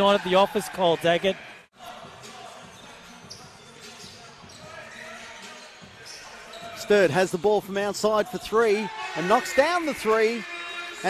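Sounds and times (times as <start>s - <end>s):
commentator speaking: 6.8s - 11.0s.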